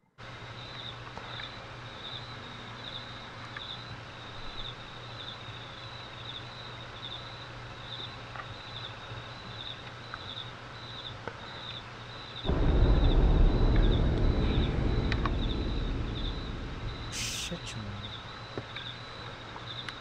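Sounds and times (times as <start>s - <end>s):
low hum and hiss: 12.5s - 18.4s
loud deep boom: 12.5s - 18.5s.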